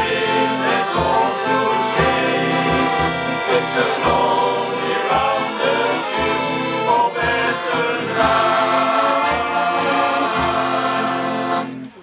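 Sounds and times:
men singing together: 0.0 - 11.7
piano accordions: 0.0 - 12.0.

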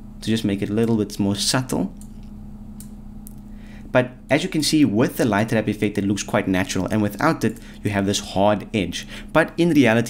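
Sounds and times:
low electrical hum: 0.0 - 10.0
man speaking: 0.2 - 2.0, 3.9 - 10.0.

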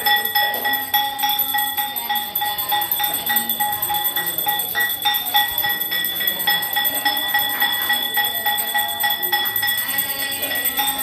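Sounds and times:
bell ringing quickly: 0.0 - 11.0.

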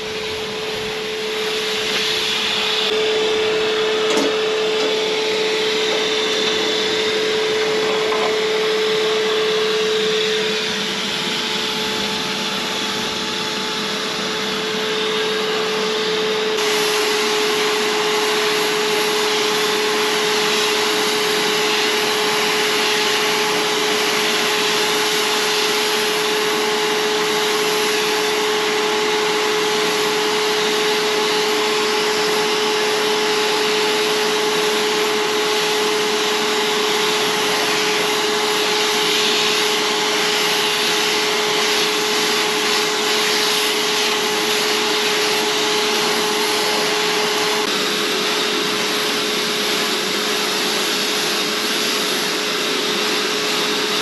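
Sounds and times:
paint spray gun hissing: 0.0 - 54.0
steady hum of compressor feed: 0.0 - 54.0.

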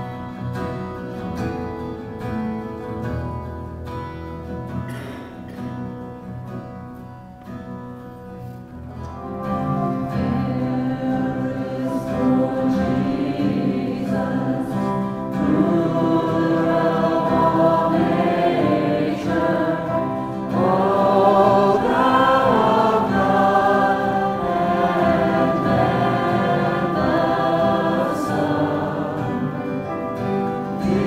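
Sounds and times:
acoustic guitar: 0.0 - 31.0
congregation singing: 8.9 - 31.0.

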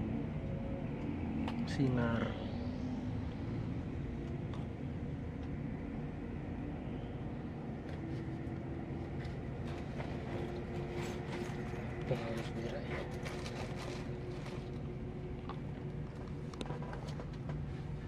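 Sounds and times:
diesel engine low rumble: 0.0 - 18.0
road noise: 0.0 - 18.0.

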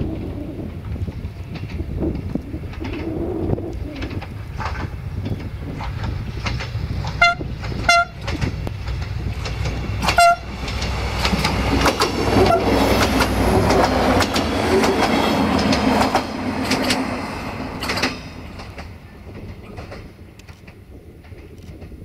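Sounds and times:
train engine rumbling: 0.0 - 22.0
wheels clicking over rail joints: 0.0 - 22.0
train horn tooting: 7.2 - 8.3, 10.0 - 10.6, 12.4 - 12.8.

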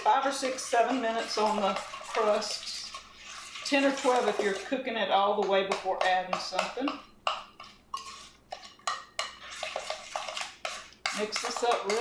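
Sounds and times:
utensil clinking against glass bowl: 6.0 - 12.0.

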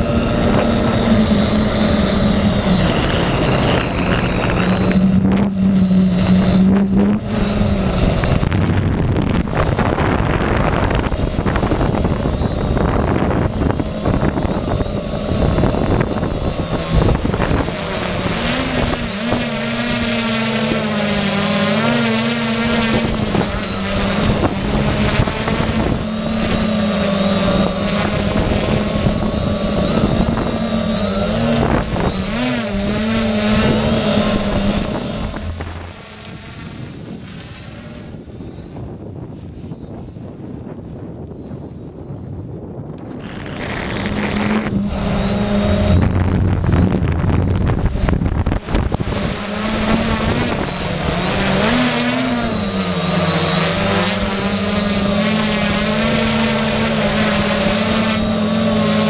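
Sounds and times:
strong wind rushing: 0.0 - 21.8, 22.4 - 58.9
drone motors buzzing: 0.0 - 59.0.

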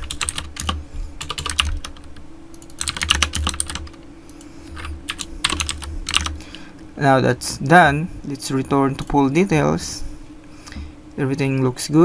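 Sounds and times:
typing on computer keyboard: 0.0 - 4.0, 5.1 - 6.4.

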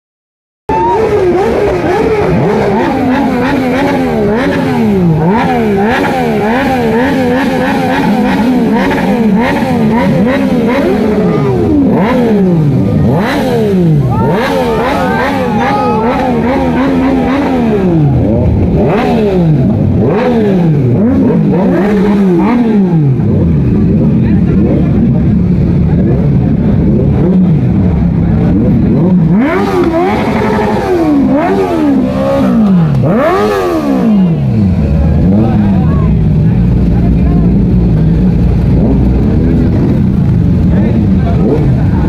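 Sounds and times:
motorcycle engines revving: 0.7 - 42.0.

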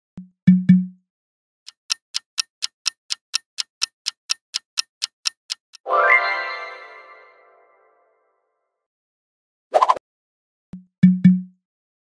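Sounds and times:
clock ticking countdown: 0.2 - 1.0, 1.7 - 5.9, 10.8 - 11.6
bright chime sting: 5.9 - 7.6.

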